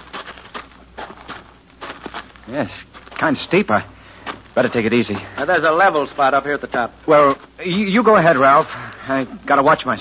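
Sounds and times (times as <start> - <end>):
footsteps on rocky path: 0.0 - 10.0.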